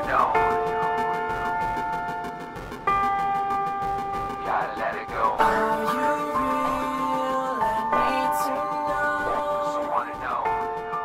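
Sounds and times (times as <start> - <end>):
held chord background music: 0.0 - 11.0.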